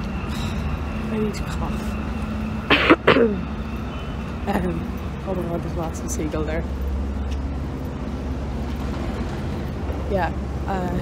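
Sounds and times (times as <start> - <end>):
street traffic hum: 0.0 - 11.0
woman coughing: 2.7 - 3.4.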